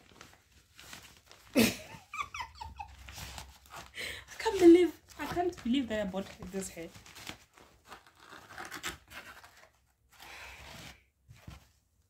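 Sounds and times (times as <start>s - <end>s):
plastic packaging rustling: 0.0s - 1.7s, 2.6s - 9.6s
packaging scraping rasp: 7.1s - 11.0s.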